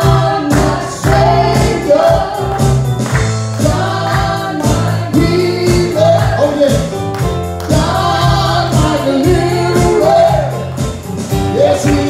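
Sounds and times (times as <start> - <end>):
voices singing along: 0.0 - 2.6, 3.6 - 6.8, 7.7 - 10.8, 11.4 - 12.0
man singing into a microphone: 5.1 - 6.9, 8.6 - 10.6, 11.5 - 12.0.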